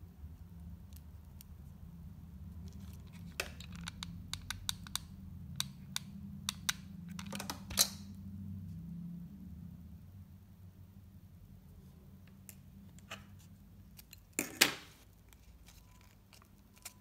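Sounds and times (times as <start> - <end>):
low steady hum: 0.0 - 17.0
hair clip clicks and taps: 3.7 - 7.6.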